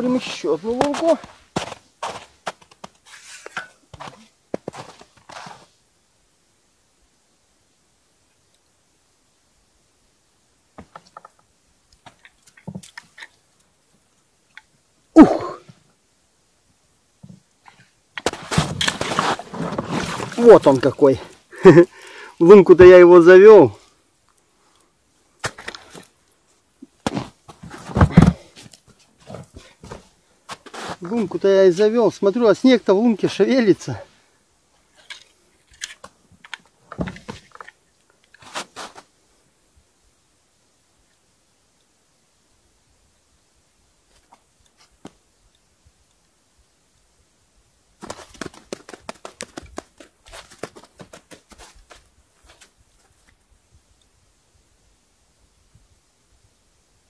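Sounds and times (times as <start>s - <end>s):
footsteps crunching in snow: 0.1s - 5.8s, 18.2s - 21.4s, 27.0s - 31.4s, 38.4s - 39.1s, 48.0s - 53.2s
rustling thump: 18.2s - 20.4s, 27.0s - 31.0s.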